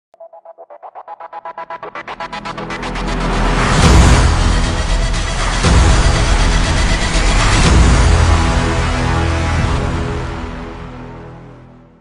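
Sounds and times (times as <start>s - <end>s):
theme music: 0.2s - 12.0s.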